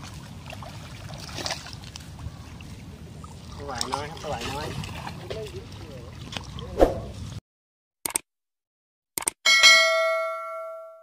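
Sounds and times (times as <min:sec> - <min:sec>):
quick clicks: 0:08.0 - 0:08.2, 0:09.2 - 0:09.4
bright bell ding: 0:09.5 - 0:11.0.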